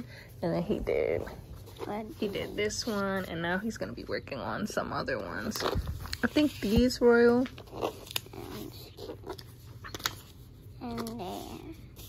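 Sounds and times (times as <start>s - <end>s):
paper rustling: 5.2s - 12.0s.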